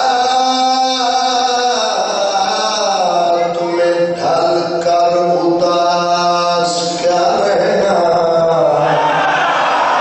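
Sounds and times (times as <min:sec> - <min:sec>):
crowd shouting together: 0:08.8 - 0:10.0.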